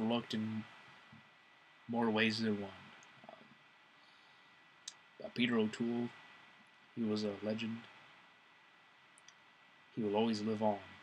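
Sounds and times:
faint steady hiss: 0.0s - 11.0s
tiny faint clicks: 2.9s - 3.3s, 4.0s - 5.1s, 9.1s - 9.5s.

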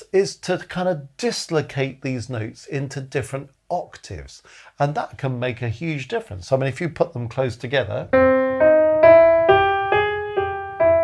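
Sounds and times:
piano single notes: 8.1s - 11.0s.

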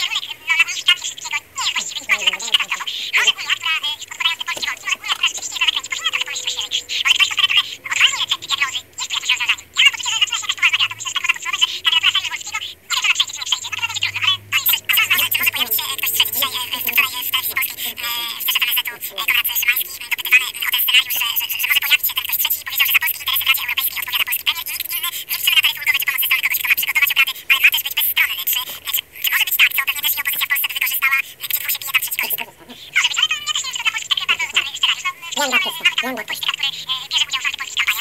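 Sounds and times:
tinny high-pitched talking: 0.0s - 38.0s.

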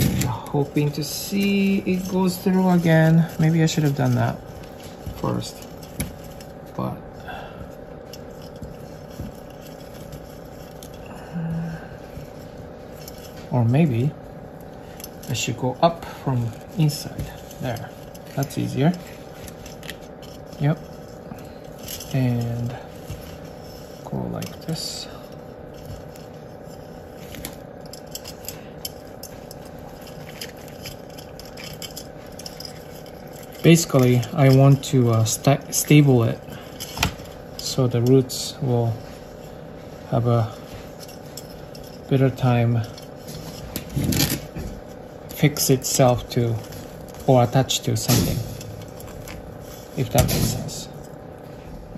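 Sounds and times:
potting mix crackling: 0.0s - 51.9s
steady low hum: 0.0s - 51.9s
wire clicking and scraping: 0.0s - 51.9s
person humming: 11.0s - 12.0s.

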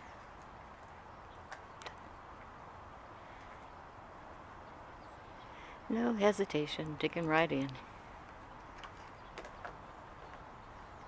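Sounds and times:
faint kibble clicks: 0.2s - 2.1s.

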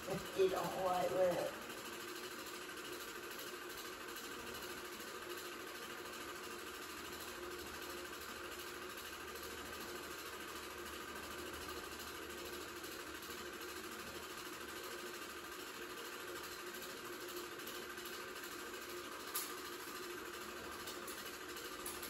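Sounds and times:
film projector whirring: 0.0s - 22.0s.

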